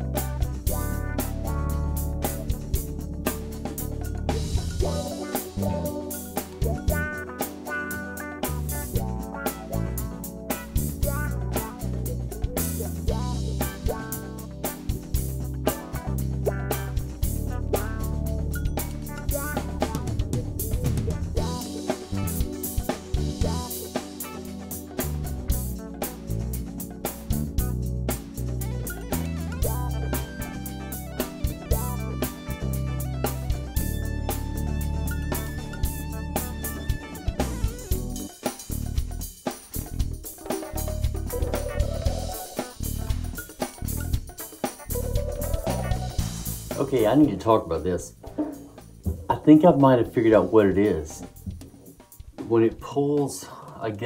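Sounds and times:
bass line: 0.0 - 51.6
drum kit beat: 0.0 - 54.0
guitar: 0.0 - 54.0.

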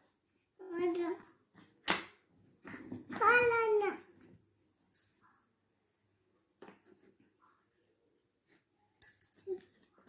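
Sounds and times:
young child's high voice: 3.1 - 4.1.

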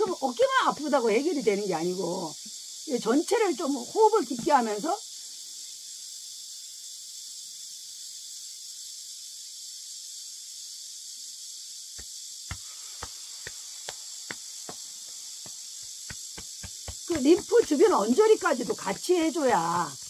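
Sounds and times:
high insect chorus: 0.0 - 20.0
hand patting chest: 12.0 - 20.0.

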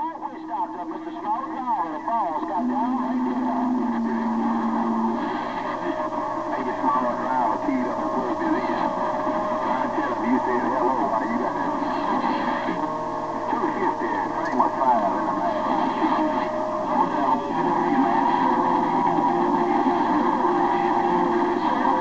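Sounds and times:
garbled radio voices: 0.0 - 22.0.

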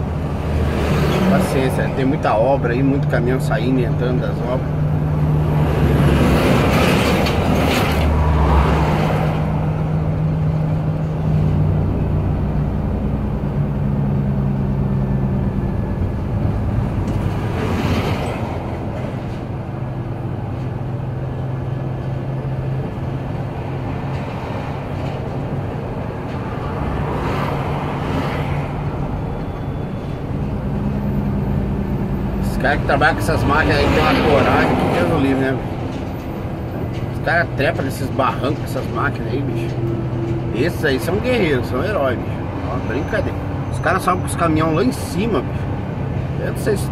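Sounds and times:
diesel truck engine humming: 0.0 - 46.9
trucks rushing past: 0.0 - 46.9.

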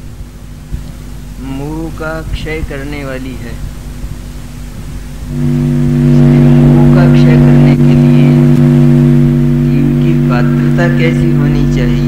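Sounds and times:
background hiss: 0.0 - 12.0
loud steady multi-tone drone: 0.0 - 12.0.

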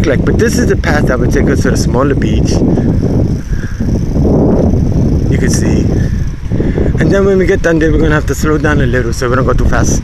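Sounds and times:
bicycle rolling noise: 0.0 - 10.0
wind on microphone: 0.0 - 10.0.

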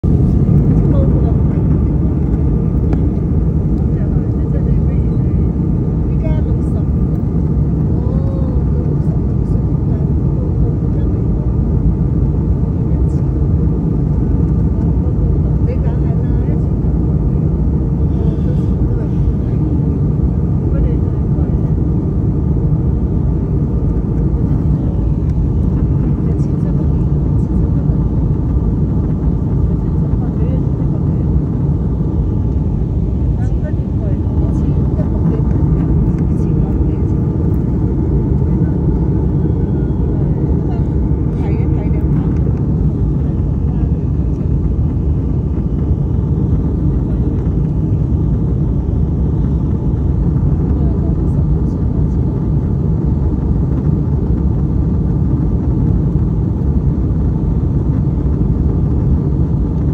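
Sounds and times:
airliner cabin engine roar: 0.0 - 59.9.

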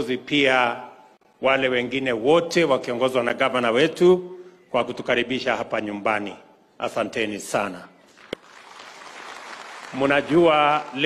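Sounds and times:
audience applauding: 8.2 - 11.0.

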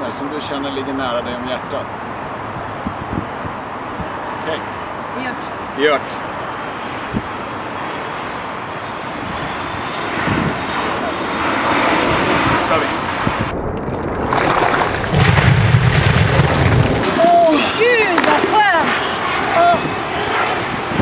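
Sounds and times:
steady rushing noise: 0.0 - 21.0
water splashing from buckets: 13.8 - 18.6.

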